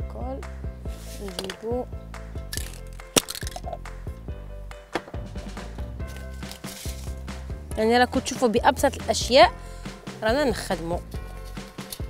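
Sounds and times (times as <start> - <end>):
music with steady beat: 0.0 - 12.0.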